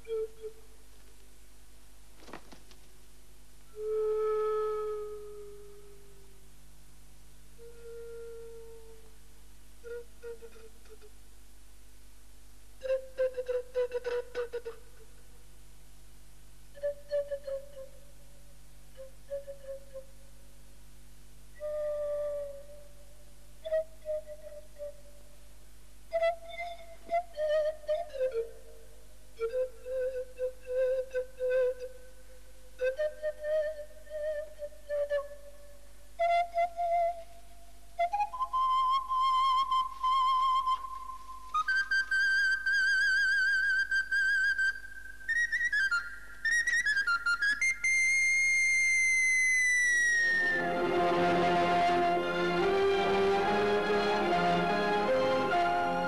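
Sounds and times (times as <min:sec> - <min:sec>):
slow solo flute melody: 0:00.0 - 0:00.8, 0:03.7 - 0:06.5, 0:07.5 - 0:09.2, 0:09.8 - 0:11.2, 0:12.8 - 0:15.2, 0:16.7 - 0:20.5, 0:21.5 - 0:25.5, 0:26.1 - 0:56.0.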